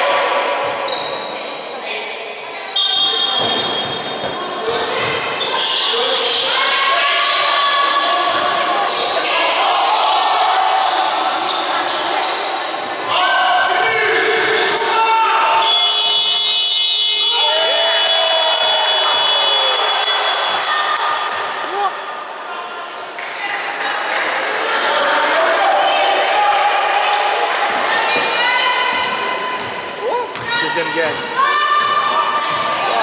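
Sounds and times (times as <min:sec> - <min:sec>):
players and crowd shouting: 0:04.6 - 0:22.1, 0:24.6 - 0:33.0
ball bouncing on wooden court: 0:29.6 - 0:32.7.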